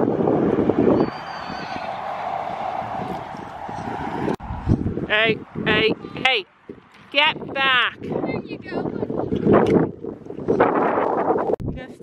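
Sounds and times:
steady rushing noise: 0:00.0 - 0:09.3.

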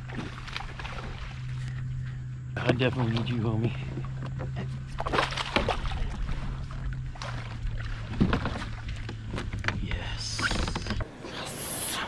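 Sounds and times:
water splashing at boat side: 0:00.0 - 0:11.8
steady low hum: 0:00.0 - 0:12.0.

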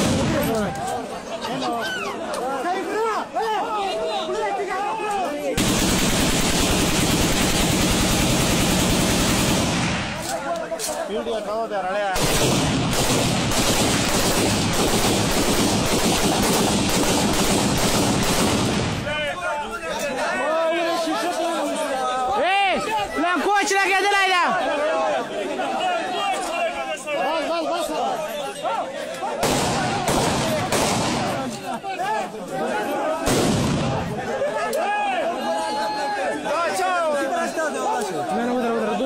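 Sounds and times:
crowd chatter: 0:00.0 - 0:39.0
rapid gunfire: 0:05.6 - 0:10.3, 0:12.1 - 0:19.1, 0:29.4 - 0:31.4.

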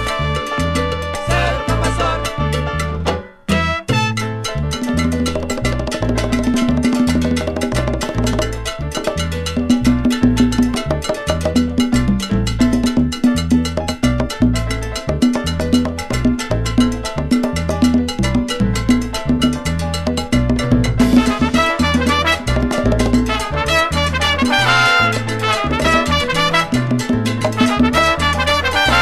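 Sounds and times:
latin percussion: 0:00.0 - 0:29.0
repeating bass line: 0:00.0 - 0:29.0
salsa band playing: 0:00.0 - 0:29.0.

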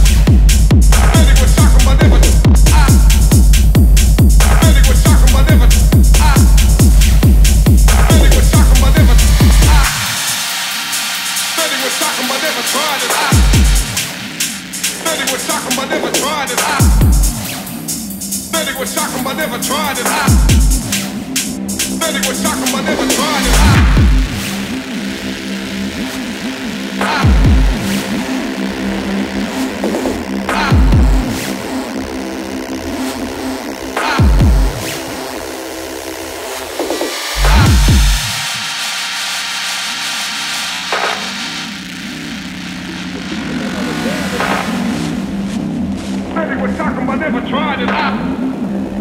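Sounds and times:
deep sub-bass note: 0:00.0 - 0:10.3, 0:23.4 - 0:29.5, 0:37.3 - 0:38.7
bending synth bass line: 0:00.0 - 0:36.6, 0:37.2 - 0:49.0
synth bass figure: 0:21.8 - 0:34.8, 0:37.3 - 0:38.7.

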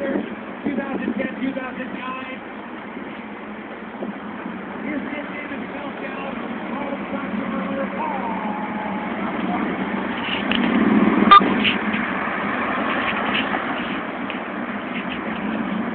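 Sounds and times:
cars driving past: 0:01.6 - 0:15.9
faint voices: 0:04.8 - 0:10.5.

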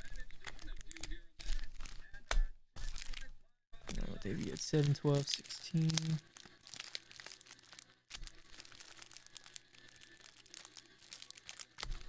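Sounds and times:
cellophane wrappers crinkling: 0:00.0 - 0:03.3, 0:03.9 - 0:12.0.

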